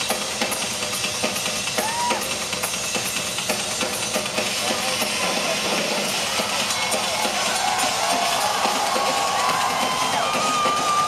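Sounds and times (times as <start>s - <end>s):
crowd noise: 4.3s - 11.0s.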